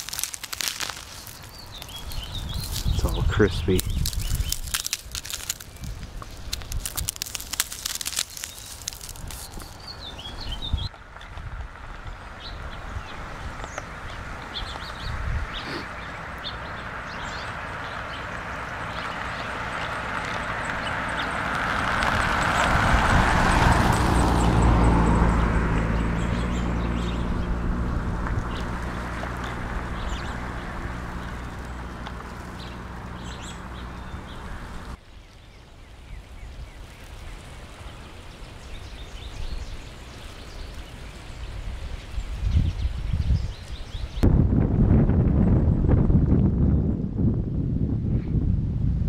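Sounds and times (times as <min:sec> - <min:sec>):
small birds chirping: 0:00.0 - 0:11.1, 0:12.0 - 0:21.5, 0:23.4 - 0:27.6, 0:28.4 - 0:44.2
ice-coated pine needles crackling: 0:00.0 - 0:15.0, 0:17.4 - 0:25.4, 0:26.2 - 0:35.0, 0:35.8 - 0:42.4
car driving past on icy road: 0:15.9 - 0:35.0.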